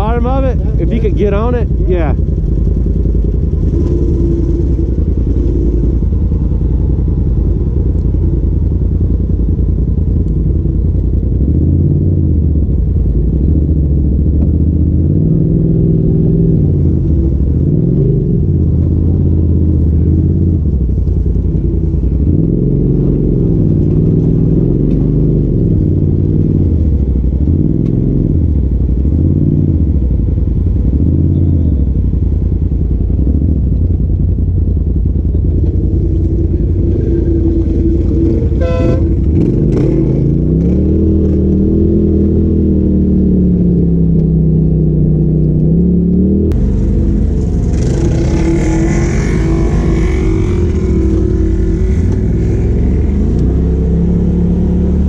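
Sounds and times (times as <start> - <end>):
vehicle engine revving: 0.0 - 30.2, 33.0 - 55.0.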